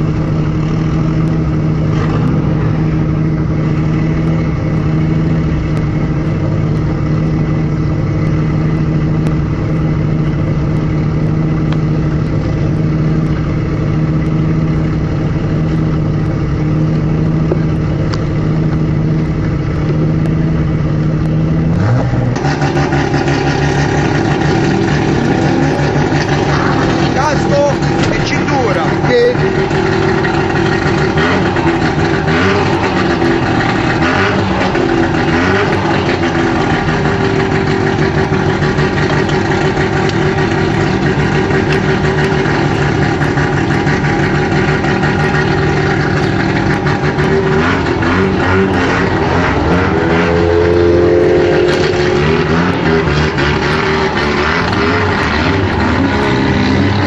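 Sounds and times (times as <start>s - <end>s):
car engine idling inside cabin: 0.0s - 49.2s.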